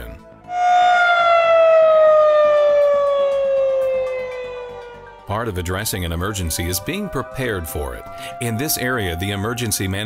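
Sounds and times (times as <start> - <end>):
warning siren gliding down: 0.5 - 10.0.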